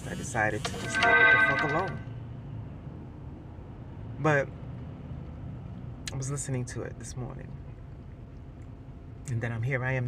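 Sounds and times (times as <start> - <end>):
vehicle cabin hum: 0.0 - 2.1.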